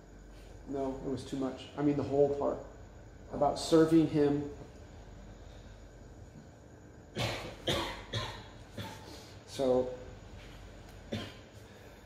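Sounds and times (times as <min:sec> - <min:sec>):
man coughing: 0:07.1 - 0:09.2, 0:11.1 - 0:11.6.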